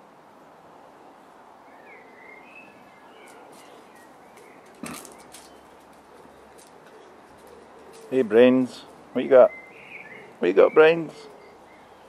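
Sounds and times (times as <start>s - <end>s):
puppy gnawing a stick: 4.4s - 8.2s
teeth crunching on wood: 4.7s - 5.6s.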